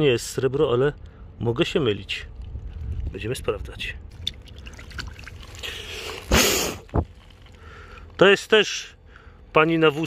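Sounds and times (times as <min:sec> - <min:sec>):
river water splashing: 0:04.2 - 0:06.6.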